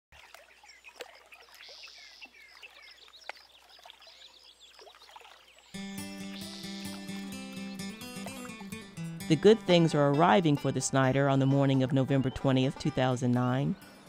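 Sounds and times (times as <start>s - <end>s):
birds chirping: 0.2s - 14.0s
music with held low note: 5.8s - 14.0s.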